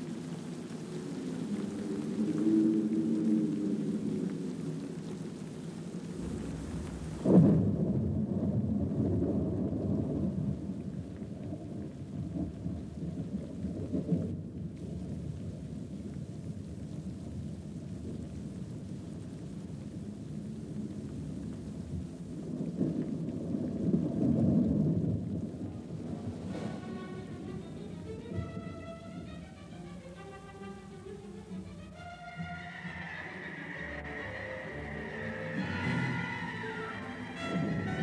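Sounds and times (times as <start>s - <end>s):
thunder rumbling: 6.0s - 15.8s, 20.8s - 38.0s
loud thunder clap: 6.2s - 10.7s.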